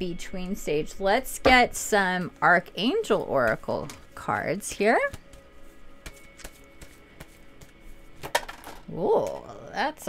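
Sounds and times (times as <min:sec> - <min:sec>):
faint background music: 0:00.0 - 0:10.0
cards being shuffled: 0:05.2 - 0:08.8.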